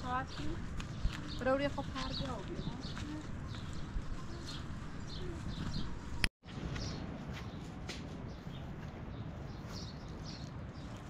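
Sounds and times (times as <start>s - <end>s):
small birds chirping: 0.0s - 7.6s, 8.3s - 11.0s.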